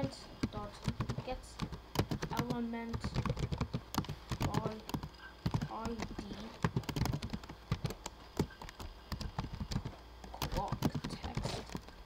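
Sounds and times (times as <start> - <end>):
computer keyboard typing: 0.4 - 12.0.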